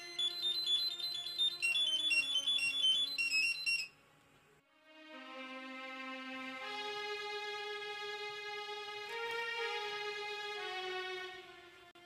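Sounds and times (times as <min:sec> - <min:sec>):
mobile phone ringing with beeps: 0:00.0 - 0:04.0.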